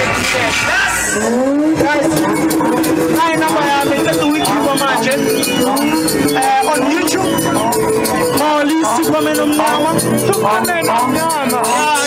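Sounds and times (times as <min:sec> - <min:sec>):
other voices: 0:00.0 - 0:12.0.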